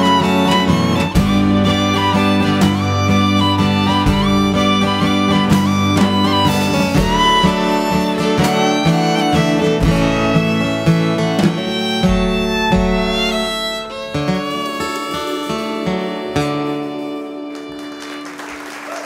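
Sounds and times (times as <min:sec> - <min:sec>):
fiddle melody with gliding notes: 0:00.0 - 0:18.4
acoustic guitar: 0:00.0 - 0:18.6.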